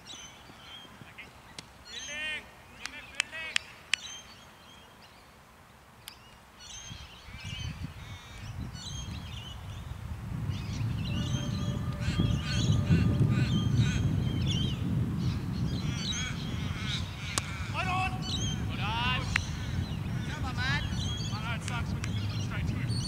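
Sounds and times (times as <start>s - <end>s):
birds chirping and squawking: 6.6s - 23.0s
low rumble: 10.2s - 15.9s.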